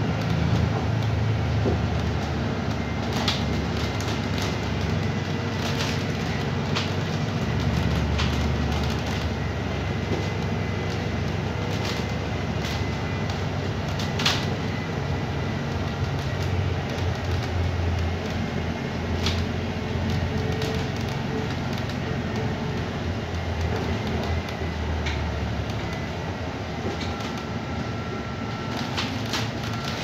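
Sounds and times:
bus cabin low drone: 0.0 - 30.0.

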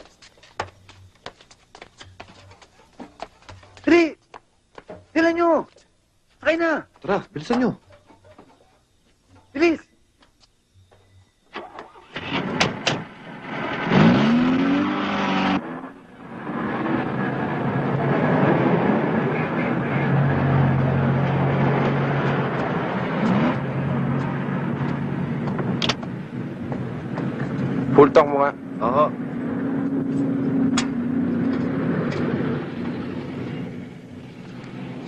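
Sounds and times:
car engine revving: 12.0 - 35.0.

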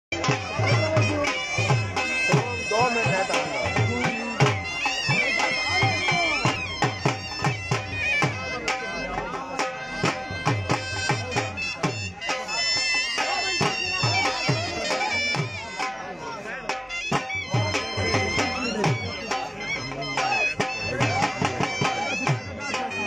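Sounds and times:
drum beating steady rhythm: 0.1 - 23.0
wind instrument melody: 0.1 - 23.0.

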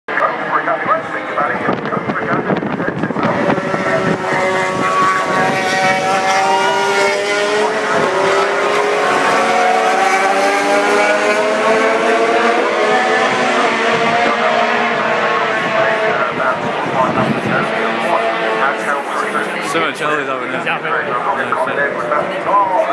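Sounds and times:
racing motorcycles engines: 0.1 - 22.9.

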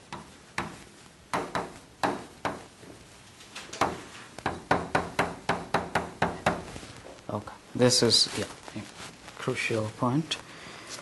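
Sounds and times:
chalk tapping on a blackboard: 0.0 - 2.7, 3.8 - 6.7.

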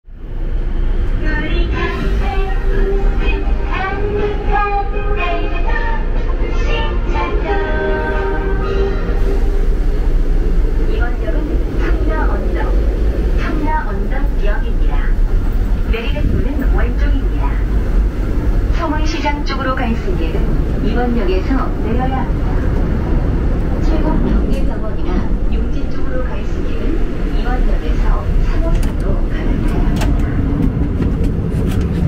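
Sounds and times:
subway car rumble: 0.0 - 32.0.

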